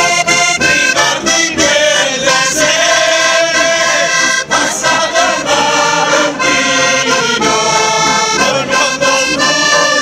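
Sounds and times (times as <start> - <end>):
button accordion: 0.0 - 10.0
men singing together: 0.0 - 10.0.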